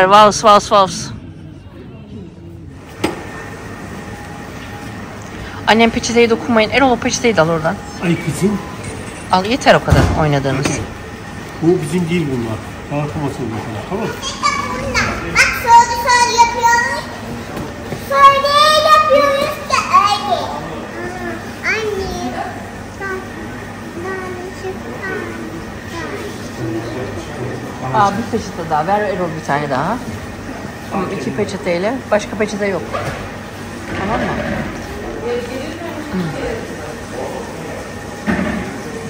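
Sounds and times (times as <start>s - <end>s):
children calling and squealing: 14.1s - 17.4s, 18.0s - 26.3s.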